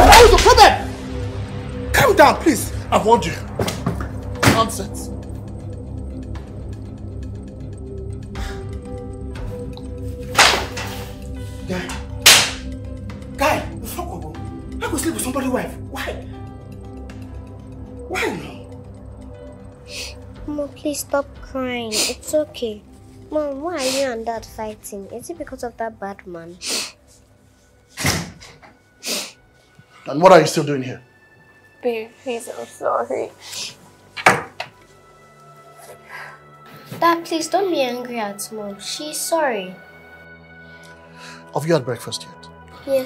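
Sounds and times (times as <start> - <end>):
background music: 0.0 - 43.0
sharp blows cracking: 10.3 - 10.8, 12.2 - 12.8.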